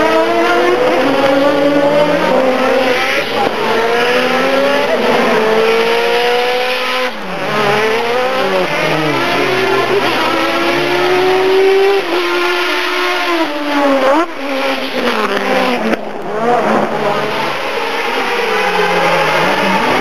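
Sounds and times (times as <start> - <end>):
race car engines accelerating: 0.0 - 20.0.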